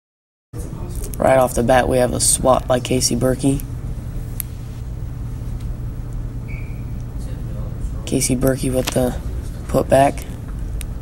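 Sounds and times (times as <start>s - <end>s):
low background rumble: 0.6s - 11.0s.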